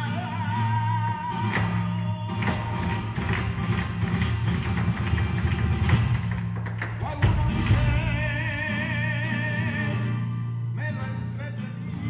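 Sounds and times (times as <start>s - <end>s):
flamenco guitars: 0.0s - 12.0s
sharp percussive strikes: 2.4s - 8.7s.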